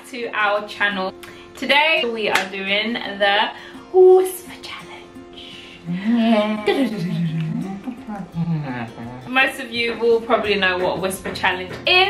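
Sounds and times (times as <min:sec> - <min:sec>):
man's playful vocal noise: 0:05.9 - 0:09.3.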